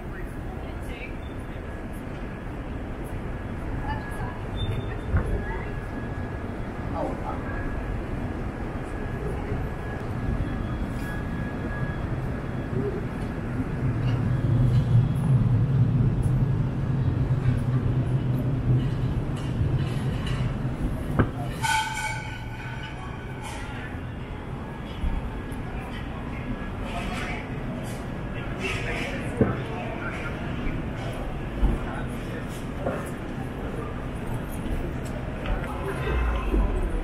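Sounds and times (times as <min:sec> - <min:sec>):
pedestrian chatter: 0:00.0 - 0:37.0
tram rumbling: 0:00.0 - 0:37.0.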